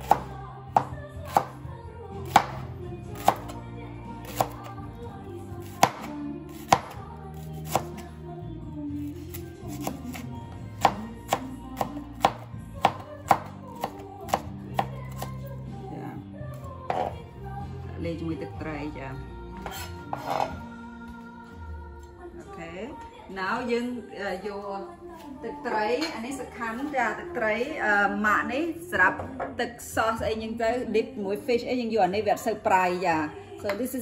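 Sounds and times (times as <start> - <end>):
background music: 0.0 - 34.0
knife chopping on cutting board: 2.3 - 2.6, 5.6 - 7.0, 16.9 - 17.1.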